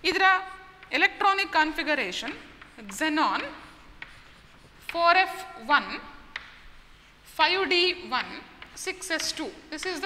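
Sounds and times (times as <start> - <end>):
chalk tapping: 0.1 - 10.0
chalk scratching on blackboard: 2.2 - 5.6.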